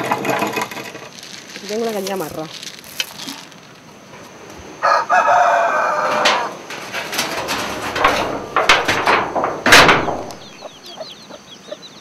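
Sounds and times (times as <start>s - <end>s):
rooster crowing: 4.8s - 6.7s.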